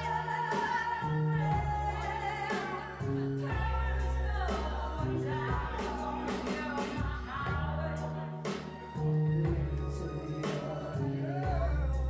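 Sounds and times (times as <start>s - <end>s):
backing track with bass and drums: 0.0s - 12.0s
person singing into a microphone: 0.0s - 12.0s.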